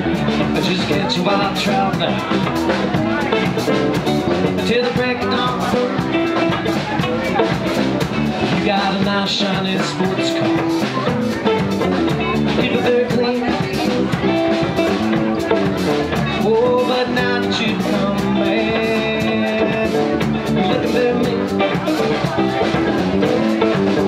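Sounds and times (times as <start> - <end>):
bass guitar: 0.0 - 24.0
drum kit beat: 0.0 - 24.0
electric guitar: 0.0 - 24.0.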